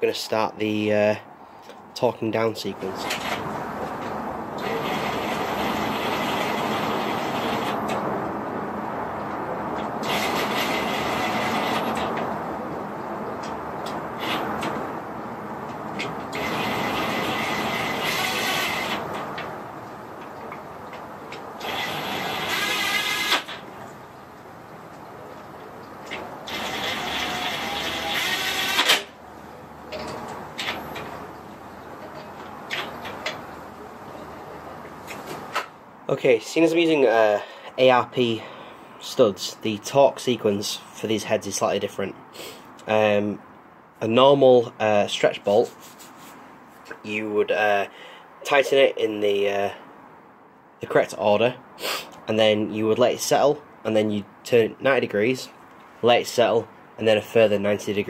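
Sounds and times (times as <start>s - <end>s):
cordless power tool running: 16.3s - 19.0s, 21.6s - 23.6s, 26.5s - 29.0s.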